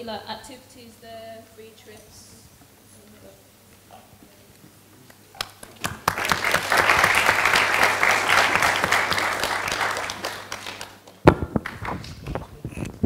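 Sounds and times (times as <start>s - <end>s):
audience applauding: 5.4s - 12.4s.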